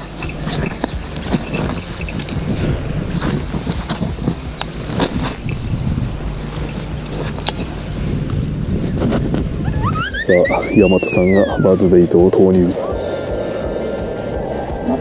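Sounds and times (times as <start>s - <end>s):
handling noise: 0.0s - 12.7s
wind rumbling on microphone: 0.0s - 15.0s.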